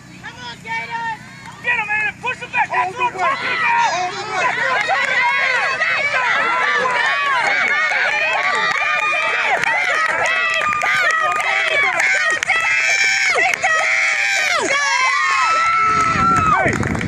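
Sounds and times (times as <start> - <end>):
crowd yelling and cheering: 0.0 - 17.0.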